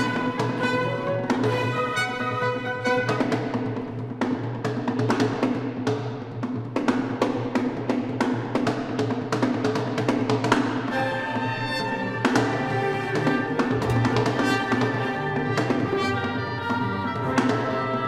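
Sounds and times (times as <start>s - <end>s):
repeated drum hits: 0.0s - 18.0s.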